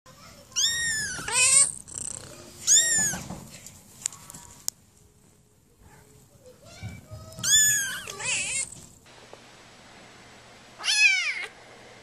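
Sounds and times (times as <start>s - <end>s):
kitten meowing: 0.5s - 3.3s, 7.4s - 8.7s, 10.8s - 11.5s.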